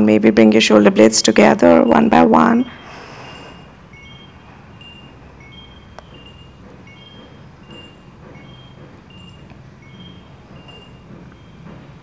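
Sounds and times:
high chiming notes: 0:01.7 - 0:12.0.

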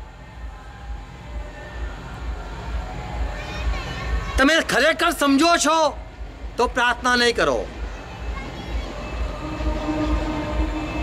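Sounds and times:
steady pitched tone: 0:07.6 - 0:11.0.

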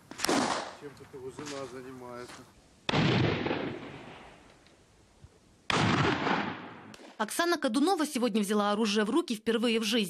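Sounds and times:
shotgun shots with echo: 0:00.2 - 0:00.8, 0:02.9 - 0:04.3, 0:05.7 - 0:07.2.

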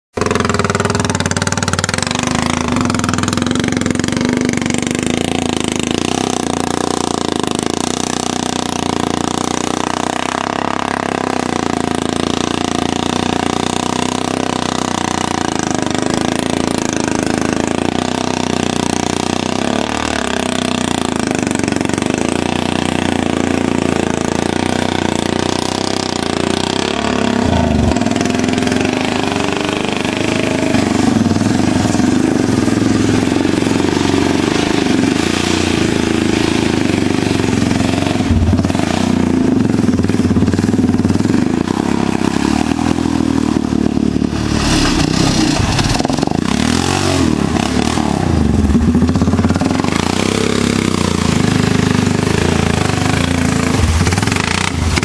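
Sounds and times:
atv engine running: 0:00.1 - 0:55.0.

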